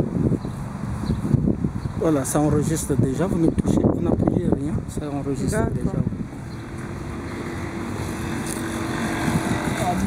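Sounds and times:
engine hum: 0:00.0 - 0:10.0
road traffic rumble: 0:00.0 - 0:10.0.

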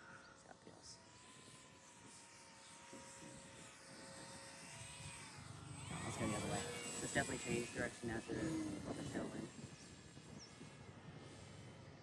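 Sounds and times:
model plane motor whine: 0:00.0 - 0:12.0.

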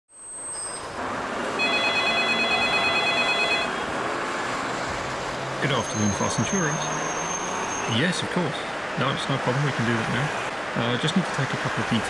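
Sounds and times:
telephone ringing: 0:01.6 - 0:03.8.

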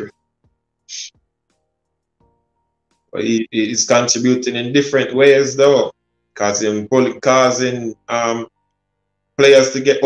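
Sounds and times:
faint background music: 0:00.0 - 0:10.0
man talking: 0:00.9 - 0:01.2, 0:03.1 - 0:08.5, 0:09.4 - 0:10.0.

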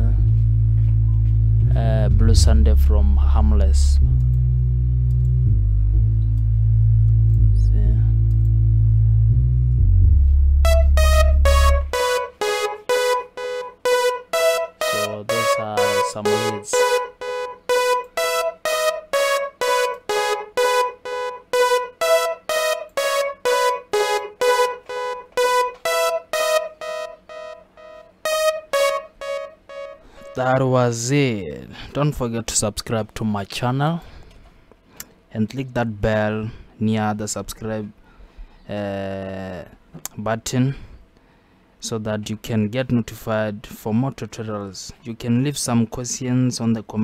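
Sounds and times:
low sustained synth chord: 0:00.0 - 0:30.4
staccato synth lead notes: 0:08.4 - 0:30.4.

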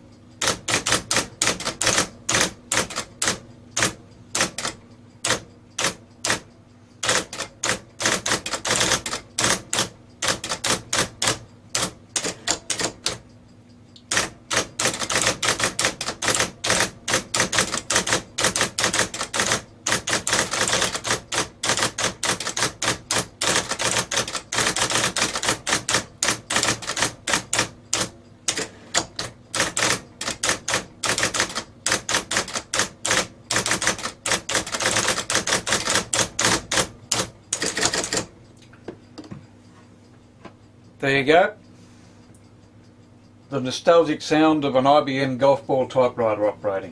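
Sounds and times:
typewriter motor hum: 0:00.0 - 0:13.3, 0:14.0 - 0:38.3
electric typewriter typing: 0:00.4 - 0:13.2, 0:14.0 - 0:38.3.

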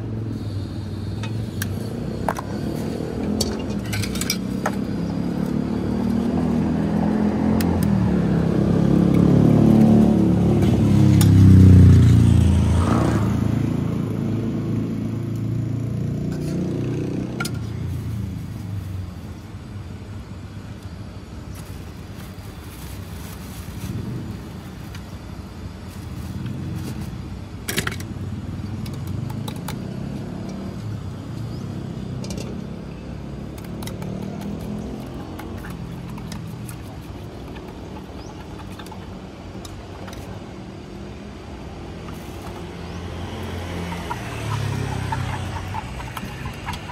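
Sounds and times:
traffic hum: 0:00.0 - 0:46.9
vehicle passing: 0:42.1 - 0:46.9.

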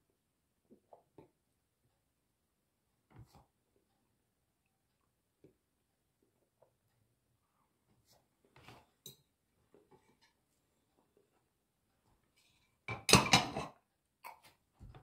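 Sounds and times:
plate and fork clattering: 0:12.9 - 0:13.8.

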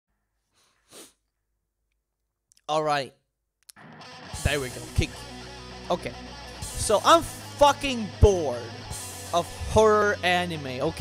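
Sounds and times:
faint breath: 0:00.4 - 0:01.2
person exhaling sharply: 0:00.6 - 0:01.2.

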